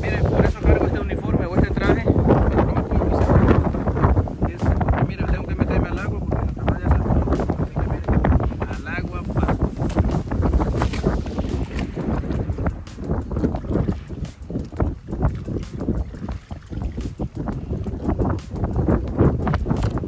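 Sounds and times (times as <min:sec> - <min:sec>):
choppy water lapping: 0:00.0 - 0:20.0
wind buffeting microphone: 0:00.0 - 0:20.0.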